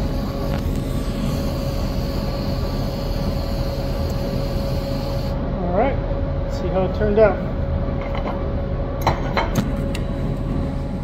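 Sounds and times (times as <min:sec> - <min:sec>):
shop background hum: 0:00.0 - 0:11.0.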